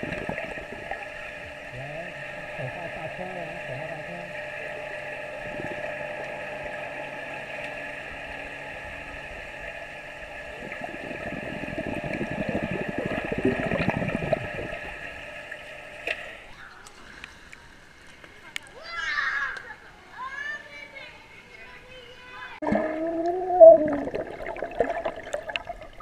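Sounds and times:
underwater bubbles and splashing: 0:00.0 - 0:16.4, 0:22.6 - 0:26.0
muffled underwater hum: 0:00.0 - 0:18.0, 0:22.6 - 0:26.0.

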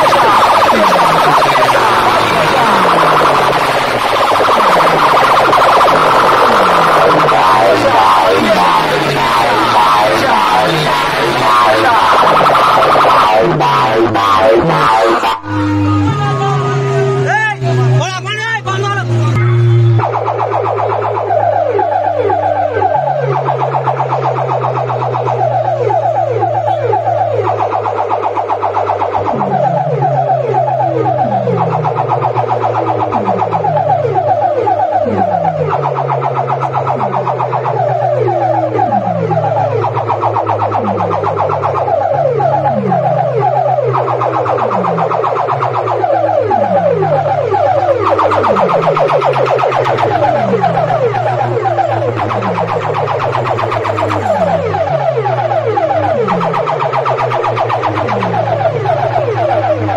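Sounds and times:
falling siren-like pitch sweeps: 0:00.0 - 0:59.9
steady low drone: 0:00.0 - 0:59.9.

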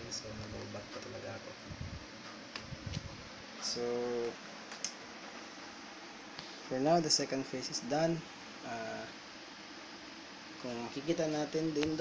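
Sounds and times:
low background hiss: 0:00.0 - 0:12.0
person speaking: 0:10.6 - 0:12.0.

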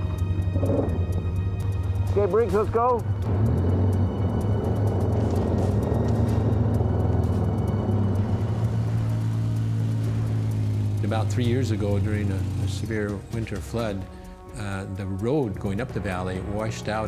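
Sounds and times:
quad engines running: 0:00.0 - 0:14.1
background music: 0:00.0 - 0:17.0.

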